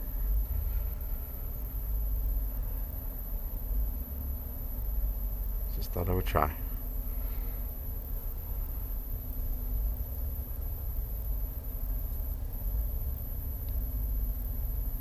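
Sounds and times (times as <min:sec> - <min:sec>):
low outdoor rumble: 0:00.0 - 0:15.0.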